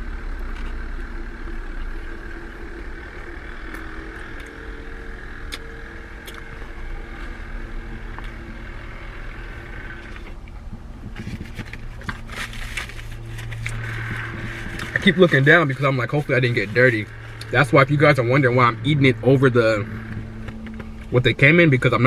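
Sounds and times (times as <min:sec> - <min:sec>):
car engine hum from inside: 0:00.0 - 0:22.0
chewing clicks: 0:06.2 - 0:06.5.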